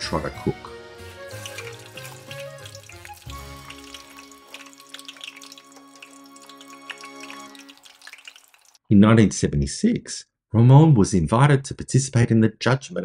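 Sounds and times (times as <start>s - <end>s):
soft background music: 0.0s - 8.0s
fries sizzling in oil: 1.0s - 8.8s.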